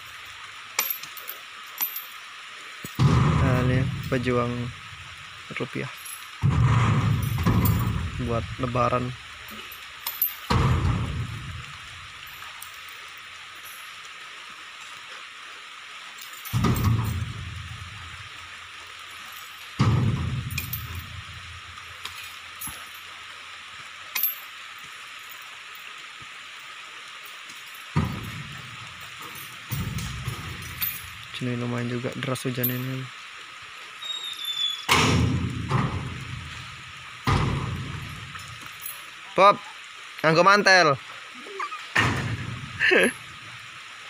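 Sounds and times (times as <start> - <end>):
heavy rain falling: 0.0 - 44.0.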